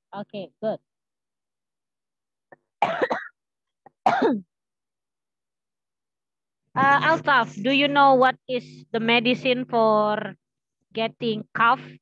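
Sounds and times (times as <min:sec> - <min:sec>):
woman coughing: 0:02.8 - 0:04.6.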